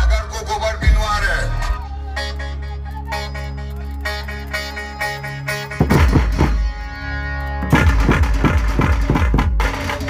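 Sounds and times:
fast drumming with deep bass: 5.8 - 6.6, 7.7 - 10.0.

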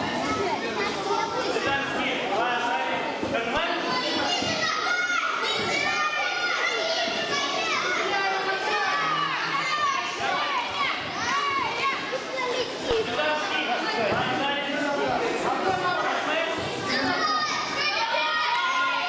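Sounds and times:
children shouting: 3.9 - 13.0, 16.6 - 19.0.

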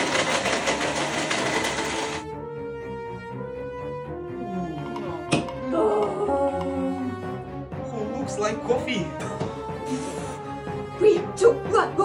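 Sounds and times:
immersion blender running: 0.0 - 2.3.

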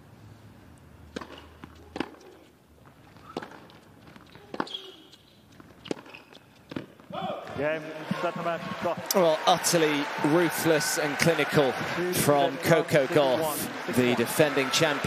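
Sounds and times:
tennis racket hitting ball: 1.1 - 2.5, 3.2 - 7.1
crowd cheering and applause: 7.5 - 15.0.

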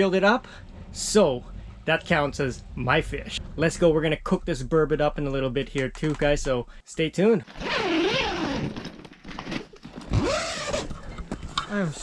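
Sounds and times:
zipper pulled open on fabric tent: 7.5 - 10.9.

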